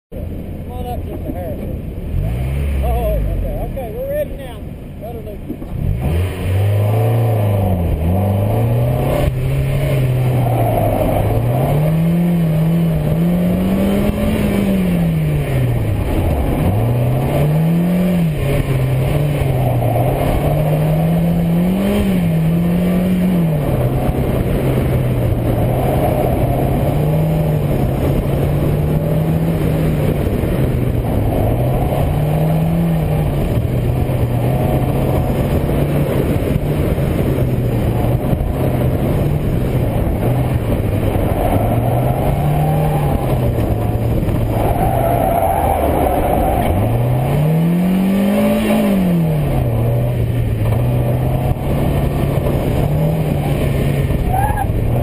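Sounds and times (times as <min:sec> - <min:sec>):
car engine revving: 0:00.2 - 0:55.0.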